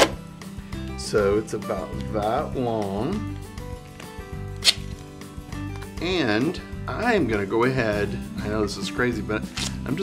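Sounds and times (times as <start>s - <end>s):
soft background music: 0.0s - 10.0s
duct tape ripping: 4.6s - 5.0s, 9.6s - 9.8s.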